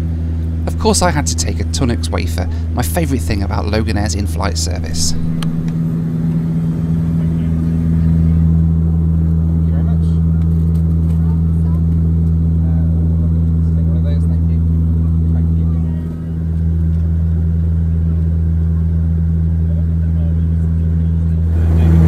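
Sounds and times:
turboprop cabin drone: 0.0s - 22.0s.

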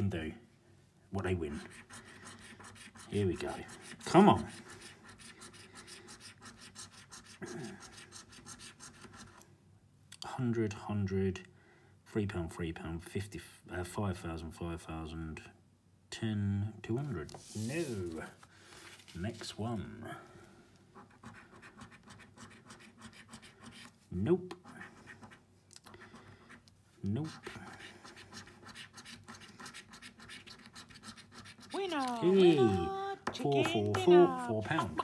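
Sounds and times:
coin scraping scratchcard: 27.2s - 32.2s.

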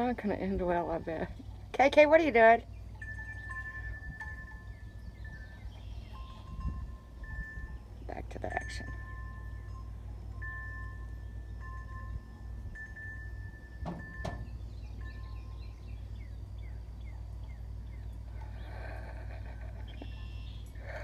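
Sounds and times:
high ringing tones: 0.8s - 21.0s
sharp knocks: 13.8s - 14.6s.

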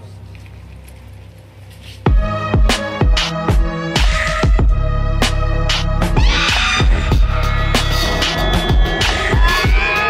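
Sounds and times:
suspenseful background music drone: 0.3s - 10.0s.

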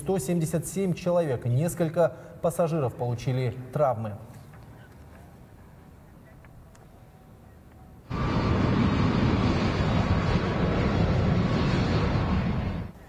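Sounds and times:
jet engine rumble: 8.1s - 13.0s.

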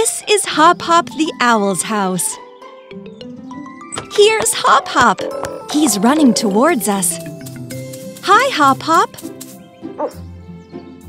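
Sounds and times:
cartoon background music: 0.0s - 11.0s
owl character high call: 4.5s - 7.2s.

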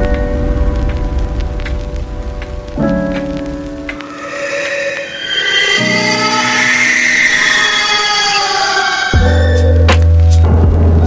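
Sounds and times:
shimmering twinkly high layer: 3.9s - 9.8s.

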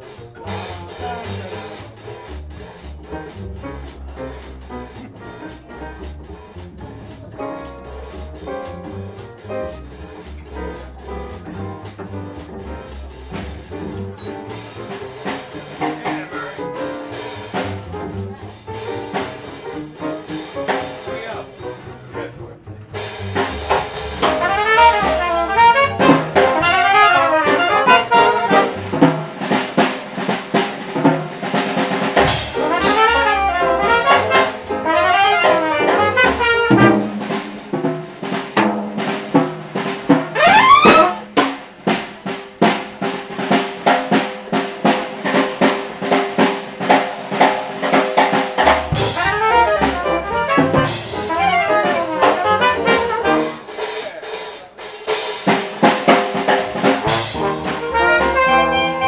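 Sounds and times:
upright bass: 0.0s - 43.0s, 48.3s - 53.8s, 55.8s - 59.0s
piano: 0.0s - 54.2s, 55.4s - 59.0s
drum kit: 0.0s - 59.0s
trombone: 0.1s - 21.2s, 22.9s - 42.8s, 48.1s - 53.9s, 55.8s - 59.0s
clarinet: 24.2s - 29.0s, 32.5s - 37.2s, 40.3s - 41.4s, 49.0s - 53.7s, 57.4s - 59.0s.

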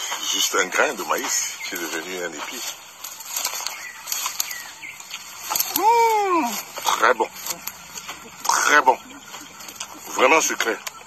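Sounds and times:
corn husks rustling: 0.0s - 11.0s.

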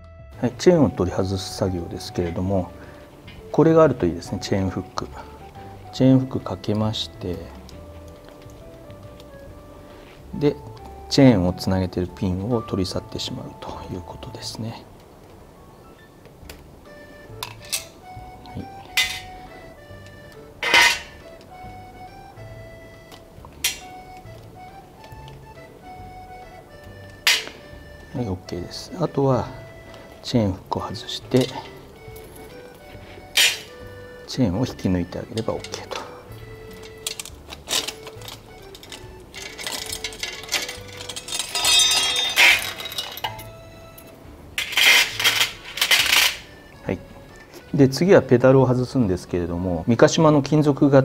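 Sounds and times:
soft background music: 0.0s - 51.0s
bicycle chain metallic rattle: 36.8s - 43.5s.

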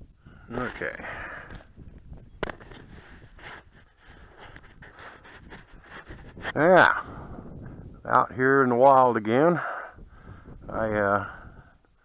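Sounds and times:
clothing rustling against camera: 0.5s - 6.6s.

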